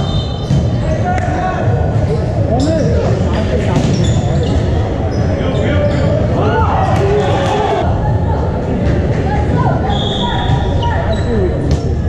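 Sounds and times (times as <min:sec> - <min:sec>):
hubbub of voices: 0:00.0 - 0:12.0.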